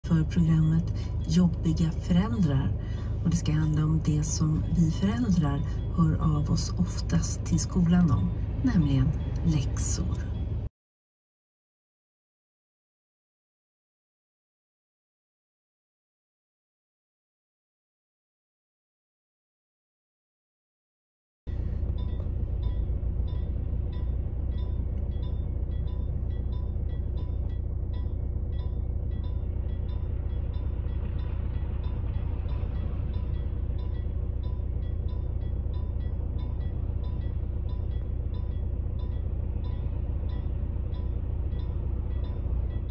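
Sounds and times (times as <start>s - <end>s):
car engine idling: 0.0s - 10.6s, 21.5s - 42.9s
level crossing warning bell: 0.0s - 10.7s, 21.5s - 42.9s.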